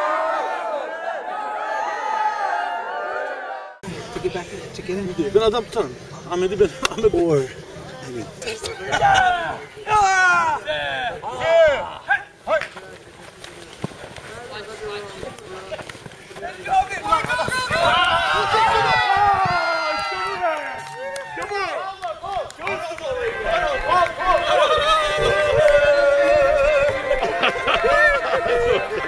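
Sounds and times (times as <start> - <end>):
men shouting and cheering: 8.2 - 13.1, 14.5 - 29.0
running footsteps on grass: 11.8 - 29.0.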